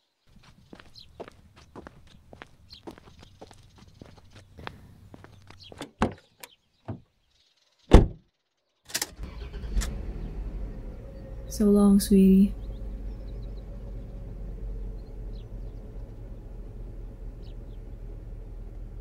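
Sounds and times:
footsteps walking away: 0.3s - 6.0s
heavy car door thudding shut: 7.9s - 8.2s
car engine rumbling: 9.0s - 19.0s.

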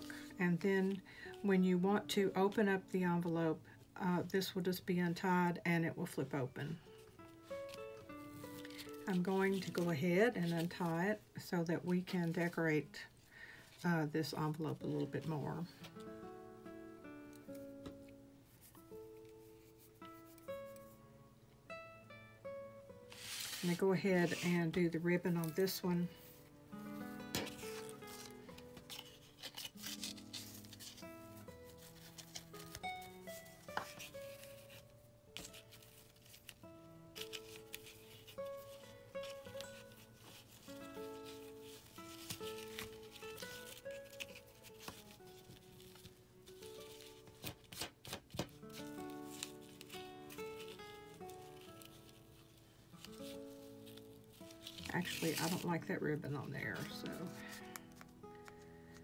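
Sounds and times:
ribbon and paper rustling: 0.0s - 3.4s, 6.0s - 16.2s, 17.4s - 21.0s, 23.1s - 59.0s
quiet background music: 0.0s - 59.0s.

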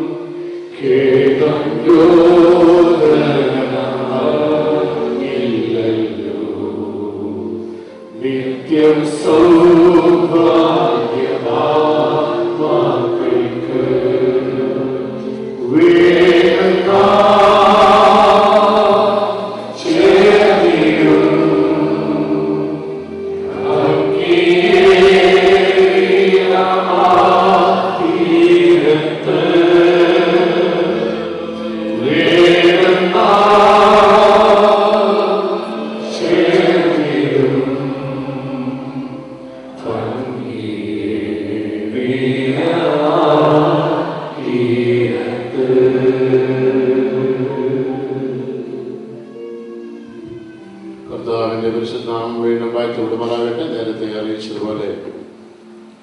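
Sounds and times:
group singing a slow hymn: 0.0s - 49.1s.

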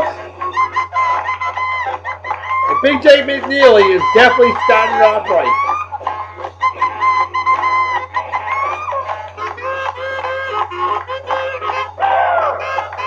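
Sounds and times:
saxophone r and b record: 0.0s - 13.0s.

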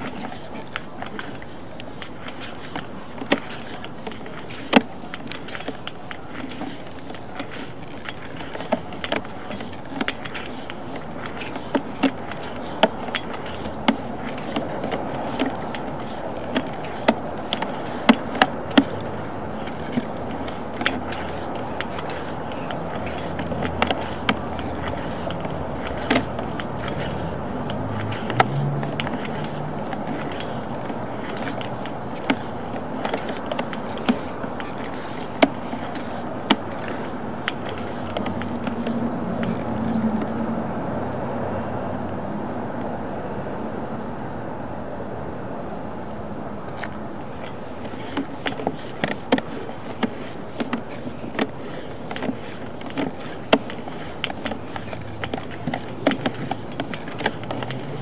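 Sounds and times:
sharp clicks and knocks: 0.0s - 40.5s, 46.7s - 58.0s
cable rustling through pipe: 0.0s - 40.6s, 46.7s - 58.0s.

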